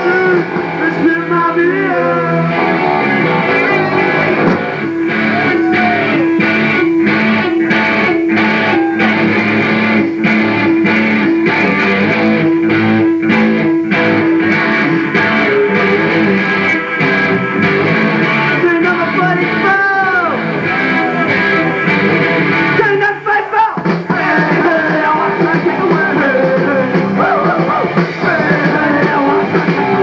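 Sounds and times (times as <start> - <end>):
punk rock band playing: 0.0 - 30.0.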